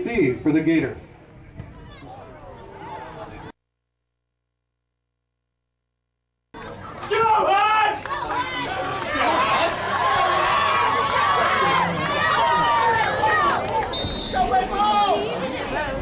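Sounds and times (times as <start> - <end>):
crowd shouting and cheering: 6.6 - 16.0.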